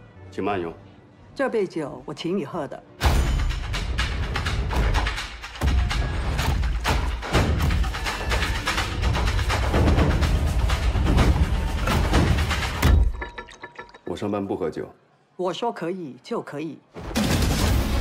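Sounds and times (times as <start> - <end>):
rapid percussive hits: 3.1 - 13.6.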